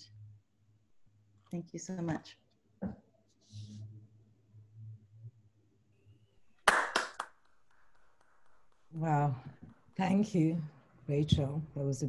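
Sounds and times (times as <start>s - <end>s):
hand claps: 6.6s - 7.5s.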